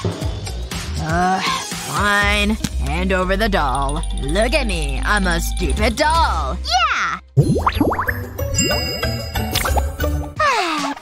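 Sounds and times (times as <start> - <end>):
cartoon music: 2.0 - 10.7
sparkly high chime tones: 8.6 - 9.6.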